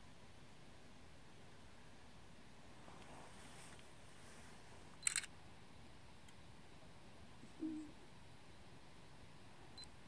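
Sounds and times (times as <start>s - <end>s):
faint background hiss: 0.0s - 10.0s
camera shutter click: 5.0s - 5.3s.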